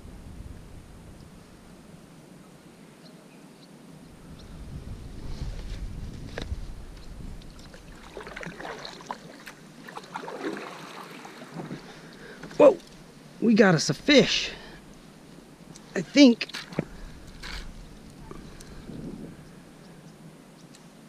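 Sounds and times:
wind gust on microphone: 0.0 - 2.7, 4.0 - 9.2, 13.0 - 20.4
small splashes and clicks: 7.4 - 13.0
kayak paddle splashing in water: 7.5 - 13.1.

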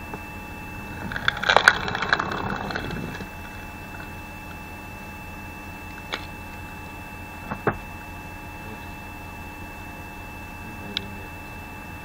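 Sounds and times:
electric motor hum: 0.0 - 12.0
wood cracking and splintering: 1.0 - 4.1.

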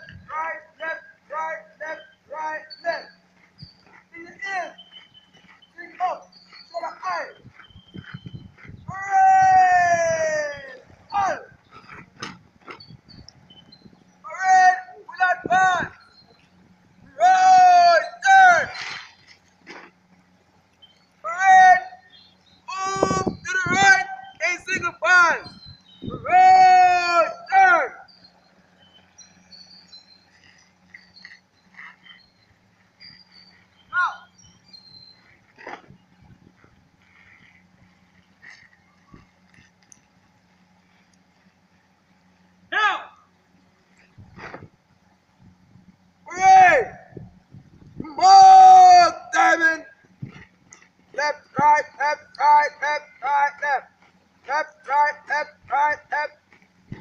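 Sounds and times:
soft shuffling: 0.0 - 8.9
low steady hum: 0.0 - 57.0
young person shouting drill calls: 0.2 - 3.2, 4.1 - 4.8, 5.8 - 7.4, 8.9 - 11.5, 14.2 - 16.0, 17.1 - 18.9, 21.2 - 25.5, 26.1 - 28.1, 33.9 - 34.3, 42.7 - 43.2, 46.2 - 47.2, 48.0 - 50.0, 51.2 - 56.4.

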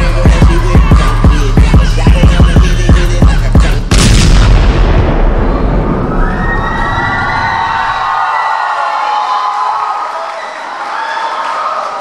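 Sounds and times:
hip-hop dance track: 0.0 - 3.9
heavy bass boom: 0.0 - 7.6
crowd cheering: 5.6 - 12.0.

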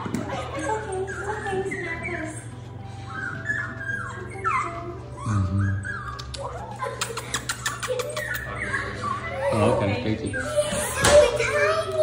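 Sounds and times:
puppy whimpering: 0.0 - 12.0.

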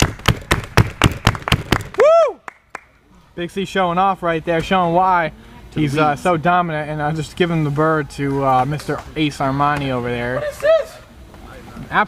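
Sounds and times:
sharp smacking impacts: 0.0 - 2.0.

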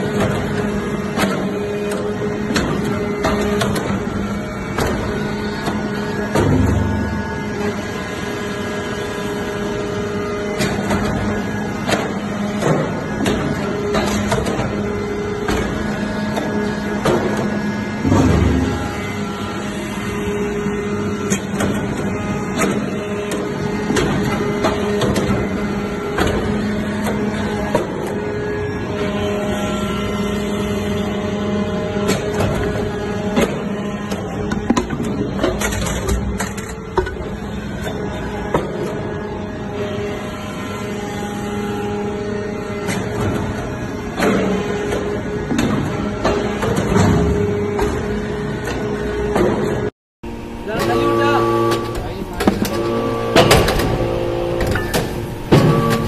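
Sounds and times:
hydraulic pump hum: 0.0 - 56.0
press clicks and knocks: 50.8 - 56.0.

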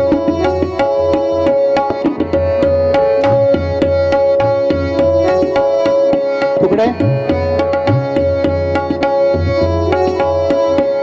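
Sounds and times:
harmonium melody: 0.0 - 11.0
tabla strokes: 0.0 - 11.0.

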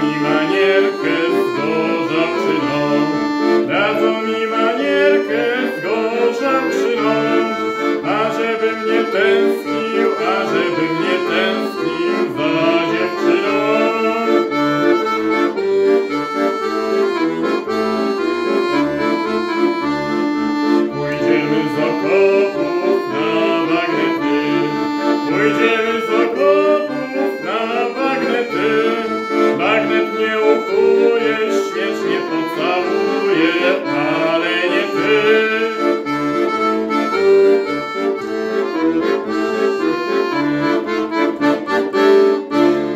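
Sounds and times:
accordion playing a melody: 0.0 - 42.9.

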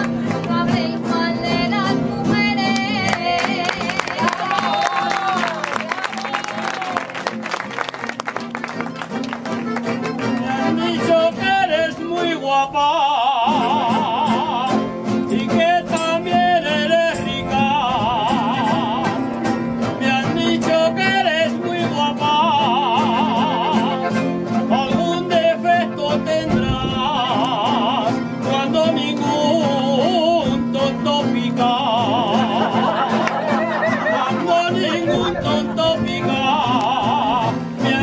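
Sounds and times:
accordion: 0.0 - 38.0
strummed guitar: 0.0 - 38.0.

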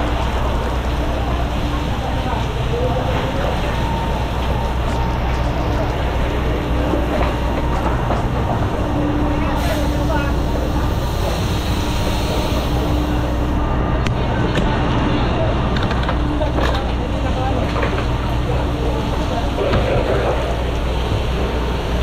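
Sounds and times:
fire hose spraying water: 0.0 - 13.6
low engine drone: 0.0 - 22.0.

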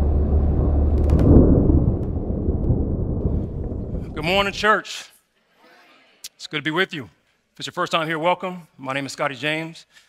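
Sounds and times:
deep thunder-like rumble: 0.0 - 4.6.

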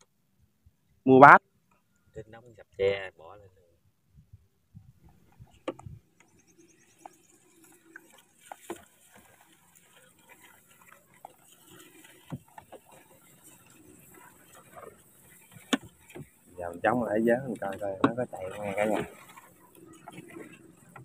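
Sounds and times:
faint scattered clicks and knocks: 5.0 - 21.0.

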